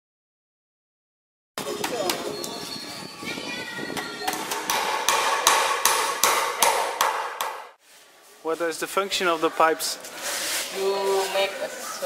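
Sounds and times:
hammer blows ringing: 1.6 - 7.8.

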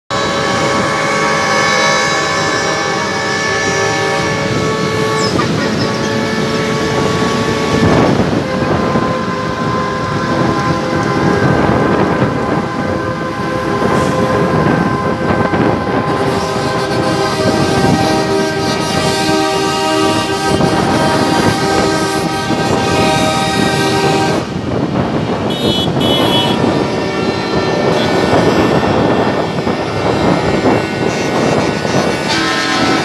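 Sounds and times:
diesel truck engines: 0.1 - 33.0
truck air horns blowing: 0.1 - 33.0.

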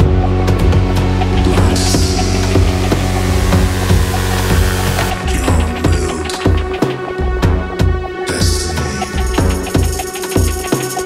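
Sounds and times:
house dance music: 1.2 - 6.8.

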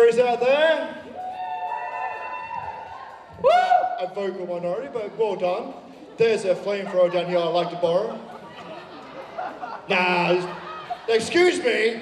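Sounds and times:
audience whooping and cheering: 1.0 - 4.2.

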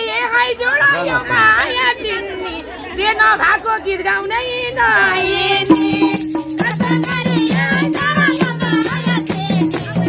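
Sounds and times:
people chattering: 0.0 - 10.0
woman singing folk song: 3.9 - 10.0.

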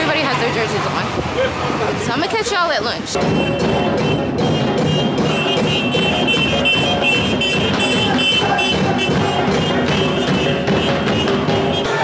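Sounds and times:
street percussion band drumming: 0.0 - 12.0.

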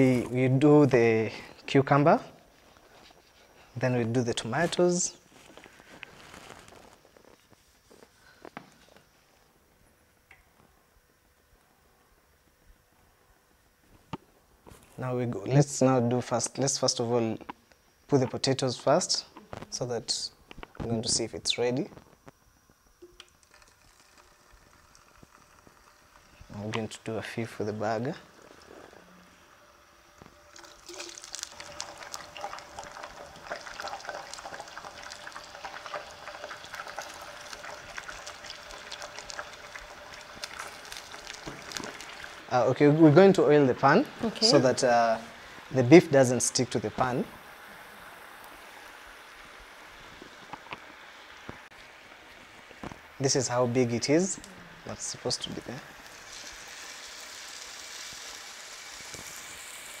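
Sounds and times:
potato wedges deep-frying in oil: 14.7 - 60.0.

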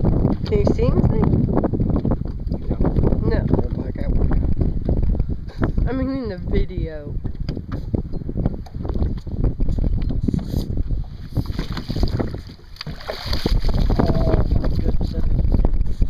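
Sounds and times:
wind rumble on microphone: 0.0 - 16.0
water splashing: 11.2 - 15.6.

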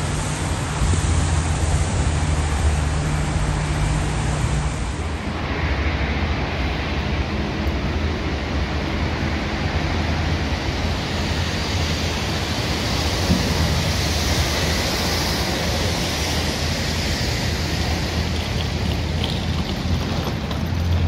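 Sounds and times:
traffic rush: 0.0 - 21.0.

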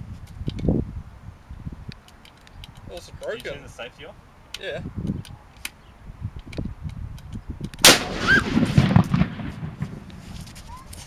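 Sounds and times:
low wind: 0.0 - 11.0
sharp clicks: 1.9 - 3.6, 6.4 - 8.0.

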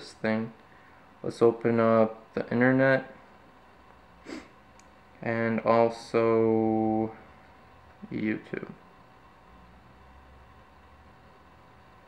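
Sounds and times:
thin steady hum: 0.0 - 12.0.

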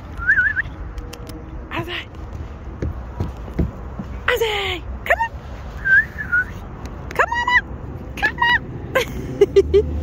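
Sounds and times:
person whistling to call a dog: 0.2 - 0.7, 5.8 - 6.5.

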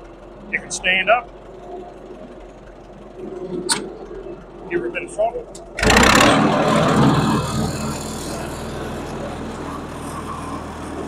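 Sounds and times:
tractor engine running: 0.0 - 11.0.

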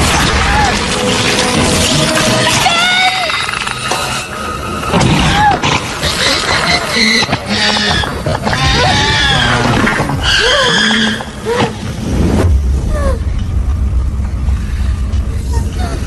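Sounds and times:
film soundtrack music: 0.0 - 16.0
low rumble: 8.7 - 16.0.

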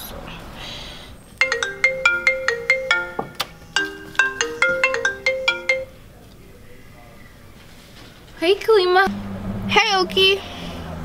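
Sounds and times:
mobile phone ringtone: 1.4 - 6.0.

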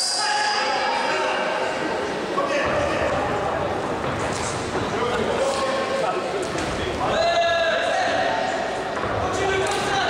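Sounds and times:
people shouting in a hall: 0.0 - 3.8, 7.0 - 10.0.

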